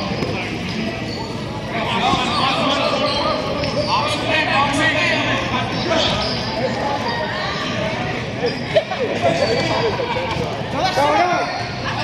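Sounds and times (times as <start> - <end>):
general noise of play: 0.0 - 12.0
players shouting in echoing hall: 0.4 - 12.0.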